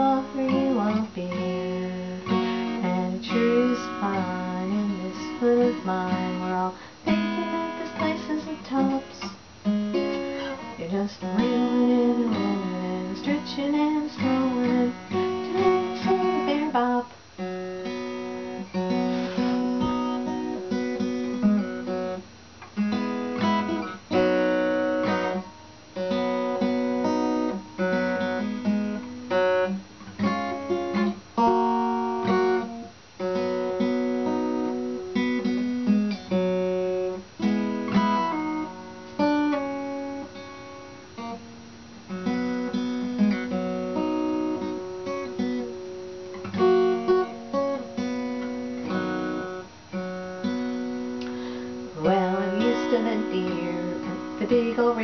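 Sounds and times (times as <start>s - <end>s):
acoustic guitar strumming chords: 0.0s - 55.0s.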